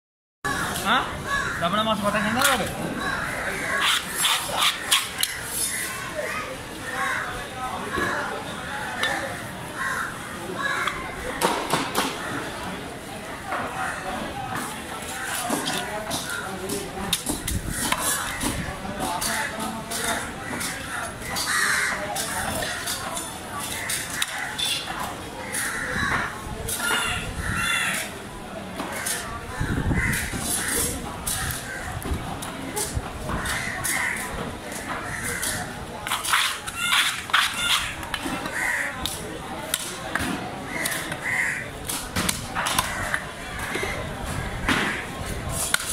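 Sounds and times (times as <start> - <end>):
crows cawing: 0.5 - 4.2, 9.6 - 11.2, 19.3 - 23.0, 25.4 - 28.1, 29.0 - 32.0, 33.4 - 35.6, 36.3 - 39.1, 40.7 - 41.8, 42.6 - 45.1.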